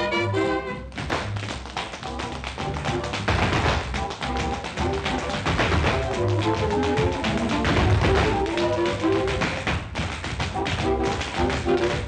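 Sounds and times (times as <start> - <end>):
jazz orchestra playing: 0.0 - 0.9
tap shoes on tile floor: 0.0 - 12.0.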